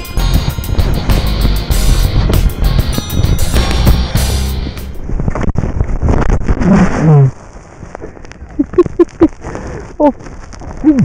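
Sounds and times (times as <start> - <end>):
laughter-like bursts: 8.6 - 9.4.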